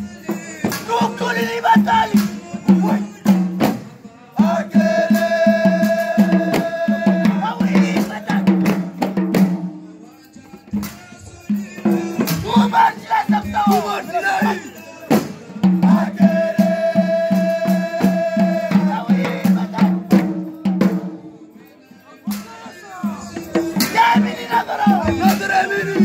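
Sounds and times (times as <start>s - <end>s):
drum beats: 0.0s - 21.6s, 22.2s - 26.0s
men chanting together: 0.0s - 26.0s.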